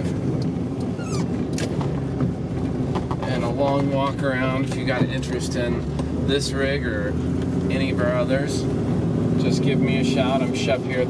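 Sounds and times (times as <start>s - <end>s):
engine running at low speed: 0.0s - 11.0s
falling squeak: 0.9s - 1.4s.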